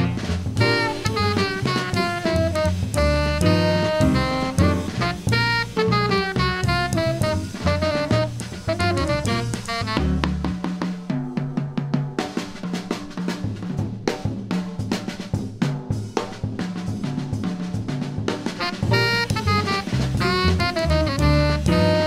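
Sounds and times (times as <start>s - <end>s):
saxophone: 0.0s - 10.6s, 18.6s - 22.0s
double bass: 0.0s - 10.7s, 18.8s - 22.0s
piano: 0.0s - 11.2s, 18.4s - 22.0s
jazz drum break: 0.0s - 22.0s.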